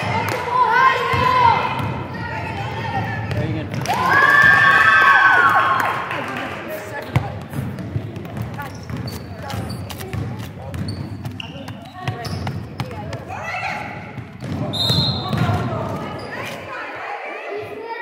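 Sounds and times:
voices in hall: 0:00.0 - 0:18.0
basketball bouncing on wooden floor: 0:01.0 - 0:03.9, 0:07.0 - 0:16.3
shoe squeaks: 0:08.5 - 0:13.3, 0:14.6 - 0:16.9.

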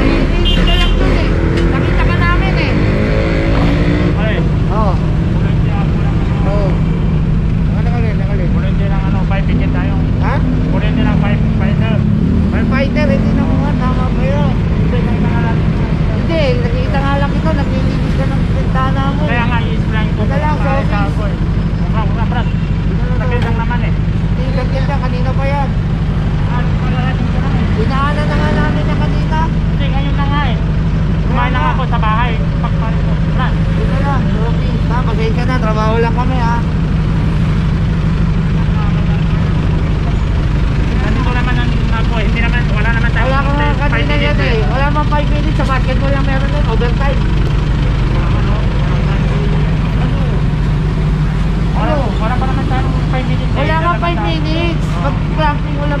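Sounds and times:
people talking: 0:00.0 - 0:36.7, 0:38.5 - 0:56.0
vehicle engine idling: 0:00.0 - 0:56.0.

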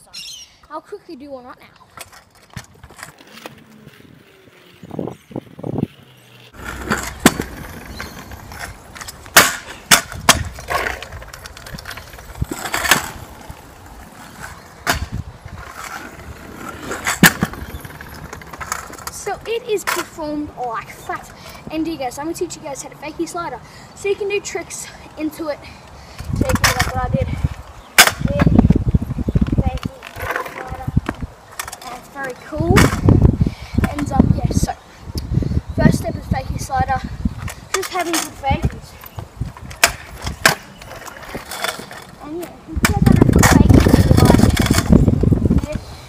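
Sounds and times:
scooter wheels rolling on concrete: 0:00.6 - 0:46.0
scooter deck clacking on ground: 0:06.5 - 0:13.2, 0:16.8 - 0:20.2, 0:29.6 - 0:33.0, 0:39.6 - 0:45.0.

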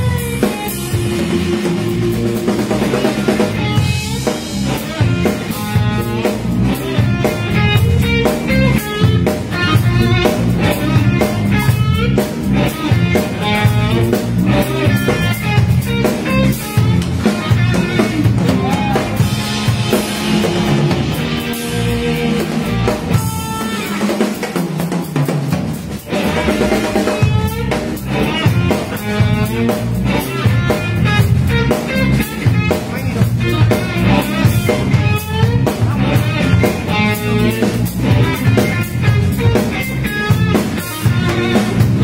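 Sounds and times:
electric guitar soloing: 0:00.0 - 0:24.8, 0:25.9 - 0:42.0
bass guitar: 0:00.0 - 0:42.0
drum kit: 0:00.0 - 0:42.0.

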